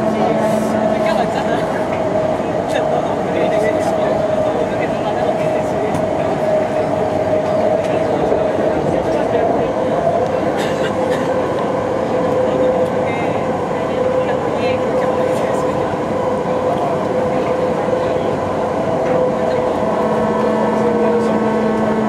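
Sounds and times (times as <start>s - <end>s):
train propulsion whine: 0.0s - 22.0s
train wheels rumbling on rails: 0.0s - 22.0s.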